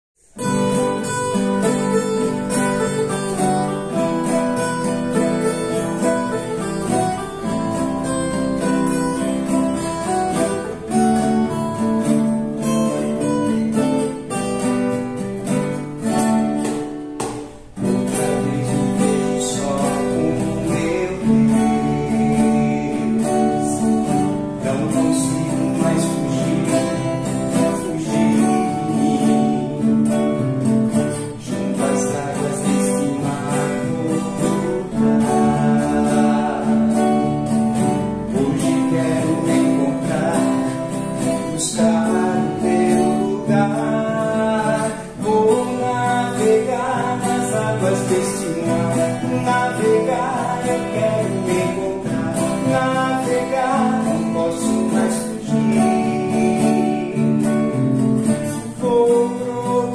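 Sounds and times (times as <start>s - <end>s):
acoustic guitars playing: 0.2s - 59.9s
man singing softly: 17.8s - 30.4s, 31.2s - 37.4s, 38.2s - 57.6s, 58.5s - 59.9s.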